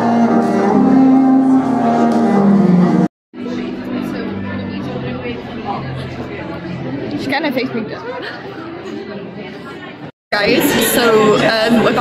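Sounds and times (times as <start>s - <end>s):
people chattering in a hall: 0.0s - 12.0s.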